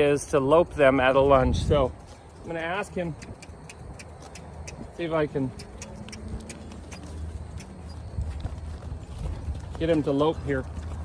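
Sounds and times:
horse hoofbeats on soft dirt: 0:00.0 - 0:11.0.

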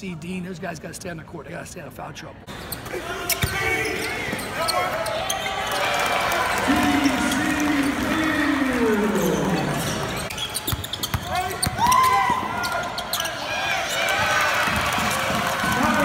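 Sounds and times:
players shouting: 0:02.9 - 0:10.3, 0:11.1 - 0:16.0
ball bouncing on hardwood court: 0:10.7 - 0:12.4.

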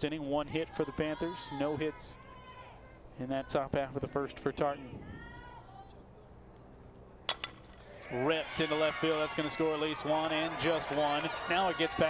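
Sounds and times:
bat cracking a ball: 0:07.3 - 0:07.9.

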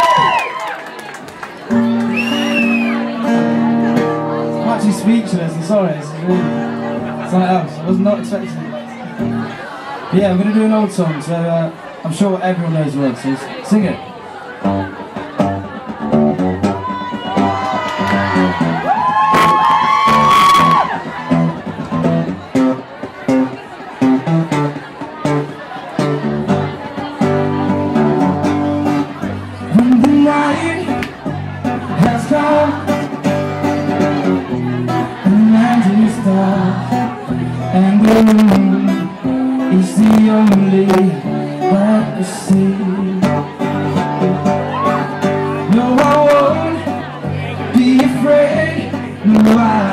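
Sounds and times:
higher voice from audience: 0:00.0 - 0:04.6, 0:16.7 - 0:21.8, 0:43.8 - 0:45.7
acoustic guitar strummed: 0:01.6 - 0:10.5, 0:14.6 - 0:49.9
man singing: 0:29.6 - 0:33.2, 0:35.0 - 0:49.9.

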